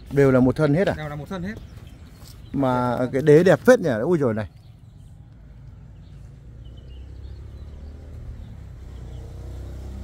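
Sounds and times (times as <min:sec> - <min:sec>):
vehicle engine hum: 0:04.6 - 0:10.0.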